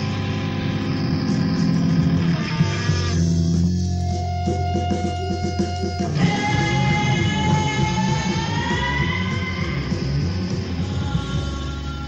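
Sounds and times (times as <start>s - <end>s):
electric guitar feedback tone: 0.0s - 12.0s
low rumble from band: 0.0s - 12.0s.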